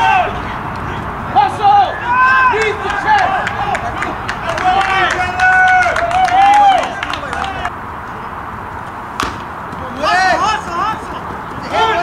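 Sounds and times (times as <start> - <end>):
wooden bat hitting ball: 9.2 - 9.6.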